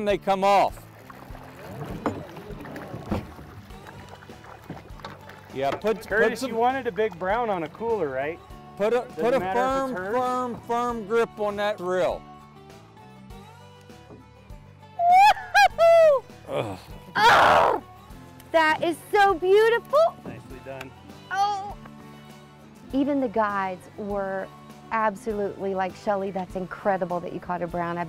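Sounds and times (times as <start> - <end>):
fish splashing in water: 0.8 - 5.9
woman whooping: 15.0 - 16.2, 17.2 - 17.8, 21.3 - 21.8.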